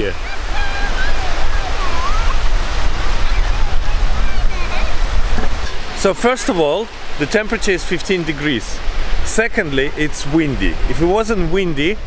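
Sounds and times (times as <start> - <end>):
small waves breaking: 0.0 - 12.0
wind buffeting microphone: 0.0 - 12.0.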